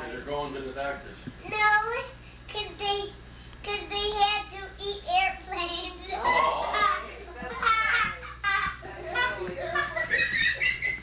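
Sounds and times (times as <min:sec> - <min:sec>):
young boy sing-song voice: 0:01.4 - 0:07.0.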